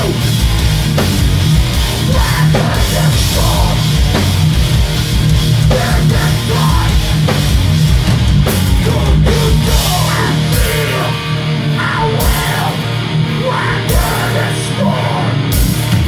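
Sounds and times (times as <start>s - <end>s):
drum kit with crashing cymbals: 0.0s - 12.9s
bass guitar: 0.0s - 16.0s
distorted electric guitars: 0.0s - 16.0s
shouted vocals: 8.8s - 15.4s.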